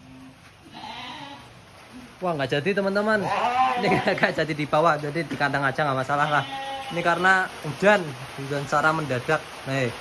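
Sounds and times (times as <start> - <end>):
sheep bleating: 0.6 - 1.5, 3.2 - 4.3, 6.1 - 7.1.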